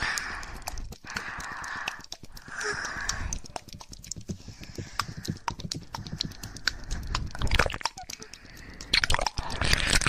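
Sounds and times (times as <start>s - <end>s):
tapping and clicking objects: 0.0s - 10.0s.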